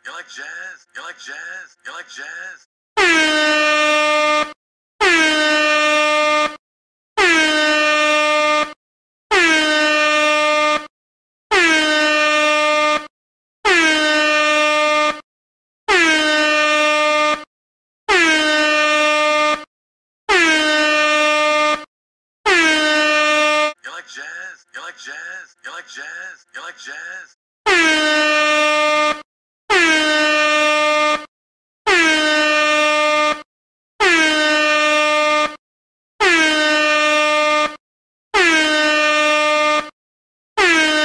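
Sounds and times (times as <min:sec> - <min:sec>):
air horn blasts: 0:03.0 - 0:06.6, 0:07.2 - 0:10.9, 0:11.5 - 0:15.2, 0:15.9 - 0:17.5, 0:18.1 - 0:19.7, 0:20.3 - 0:23.8, 0:27.7 - 0:31.3, 0:31.9 - 0:33.4, 0:34.0 - 0:35.6, 0:36.2 - 0:37.8, 0:38.4 - 0:39.9, 0:40.6 - 0:41.0.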